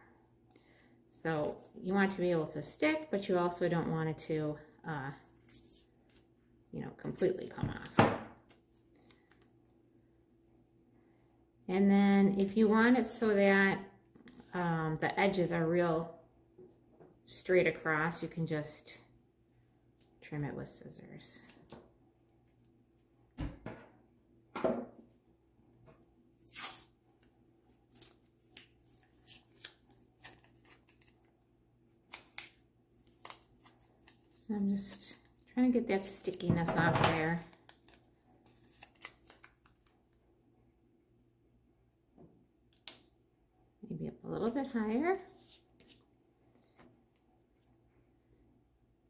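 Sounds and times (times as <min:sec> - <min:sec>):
masking tape ripping off roll: 0:26.4 - 0:27.0.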